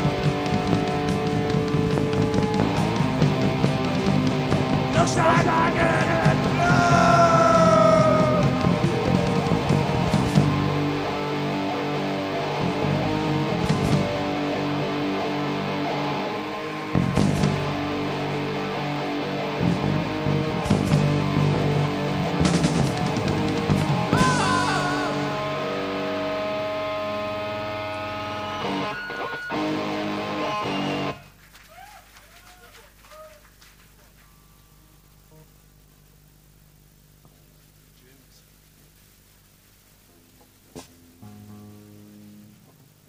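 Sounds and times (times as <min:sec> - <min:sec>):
punk band playing live: 0:00.0 - 0:31.2
distorted electric guitar chords: 0:00.0 - 0:31.4, 0:40.0 - 0:43.0.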